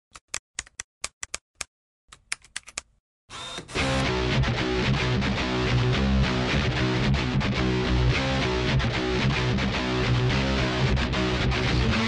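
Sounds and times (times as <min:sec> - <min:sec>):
loud guitar music: 0:03.8 - 0:12.0.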